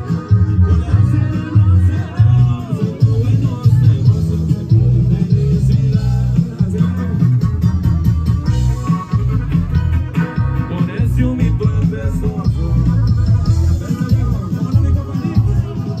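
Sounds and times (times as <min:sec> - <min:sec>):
loud amplified band music: 0:00.0 - 0:16.0.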